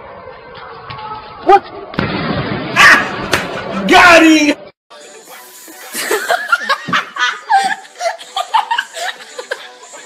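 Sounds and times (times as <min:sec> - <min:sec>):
music: 0:04.9 - 0:10.0
voices and laughter: 0:05.7 - 0:10.0.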